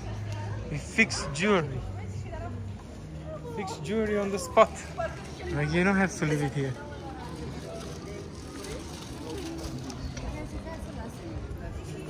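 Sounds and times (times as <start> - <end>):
faint voices of passers-by: 0.0 - 12.0.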